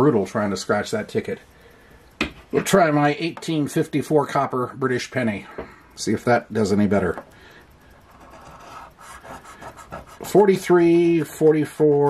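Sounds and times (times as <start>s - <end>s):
coin scraping scratch-off ticket: 8.2s - 10.5s.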